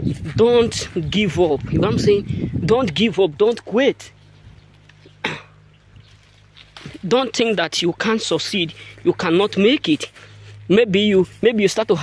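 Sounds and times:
man coughing: 5.2 - 5.6.

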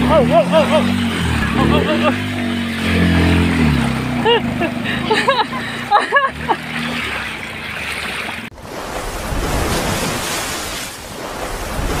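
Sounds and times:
motorcycle engine running: 0.0 - 7.4.

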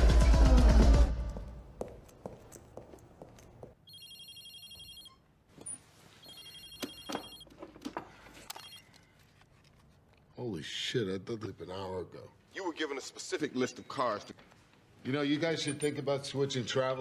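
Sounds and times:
mobile phone ringing: 3.8 - 5.3, 6.1 - 7.5, 8.5 - 9.2.

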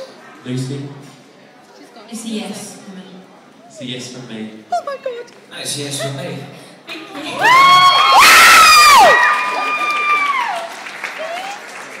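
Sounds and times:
girls screaming in delight: 7.4 - 11.6.

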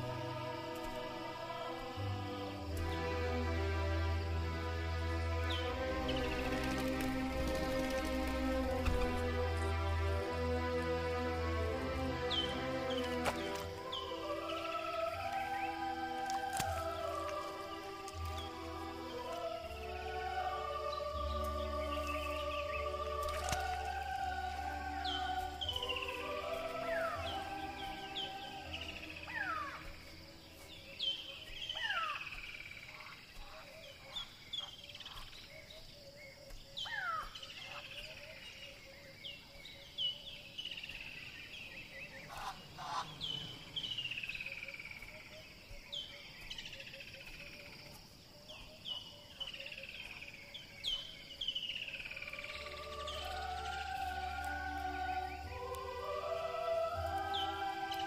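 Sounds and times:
soft music: 0.0 - 33.6, 51.8 - 58.0.

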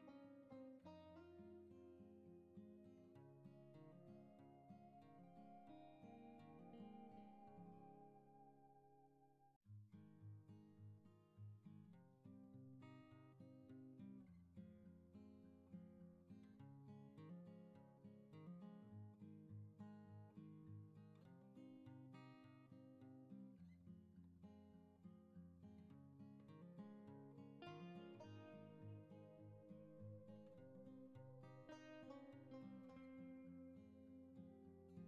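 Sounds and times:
acoustic guitar music: 0.0 - 35.0.

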